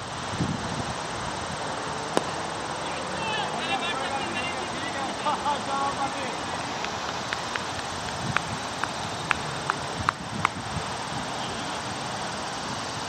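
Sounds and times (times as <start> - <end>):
steady background noise: 0.0 - 13.0.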